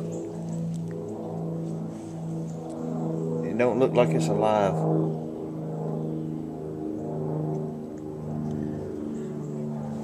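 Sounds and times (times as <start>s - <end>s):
engine idling drone: 0.0s - 10.0s.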